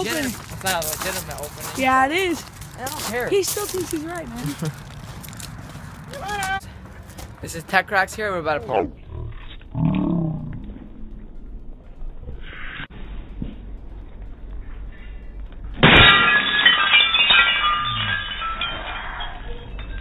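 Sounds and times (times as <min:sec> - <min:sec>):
glass bulb smashing: 0:15.8 - 0:20.0
glass pieces tinkling: 0:16.0 - 0:20.0.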